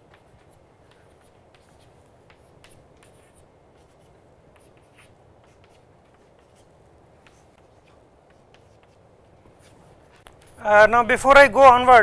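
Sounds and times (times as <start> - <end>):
chalk tapping and scratching: 0.0 - 10.6.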